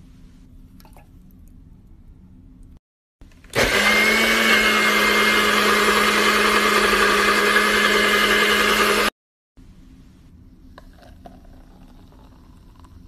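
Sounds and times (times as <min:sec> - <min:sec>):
blender motor running: 0:03.5 - 0:09.2.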